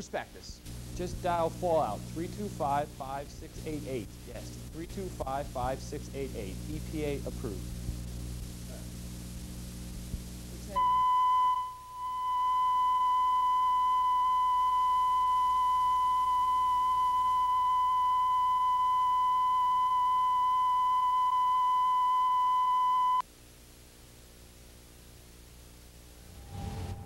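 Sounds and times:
steady test tone: 0.7 - 9.8, 10.6 - 23.2.

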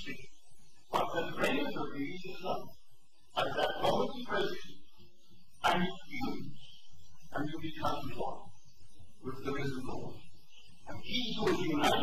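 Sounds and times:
man lecturing: 0.0 - 4.8, 5.6 - 12.0.

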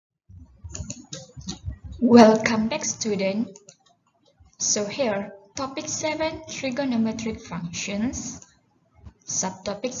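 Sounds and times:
sharp taps and clicks: 0.3 - 2.5, 3.5 - 4.6.

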